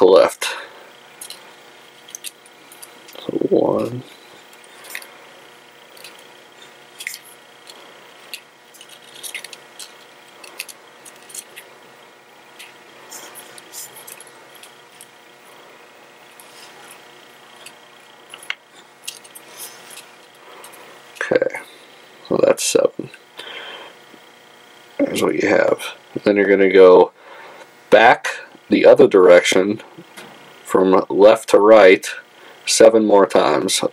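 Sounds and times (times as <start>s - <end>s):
steady low hiss: 0.0s - 33.9s.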